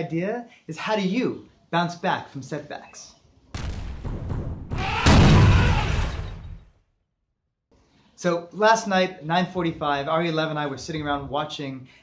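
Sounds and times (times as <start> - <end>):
deep boom: 3.6 - 6.7.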